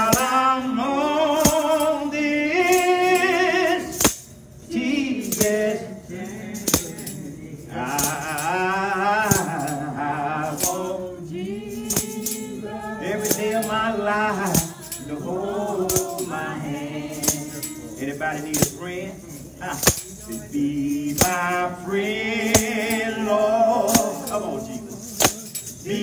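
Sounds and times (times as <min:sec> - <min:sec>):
man singing gospel song: 0:00.0 - 0:26.0
tambourine shaken and struck: 0:00.0 - 0:26.0.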